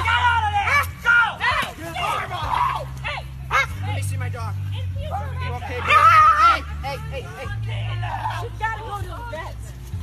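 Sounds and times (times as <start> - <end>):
people's raised voices: 0.0 - 9.6.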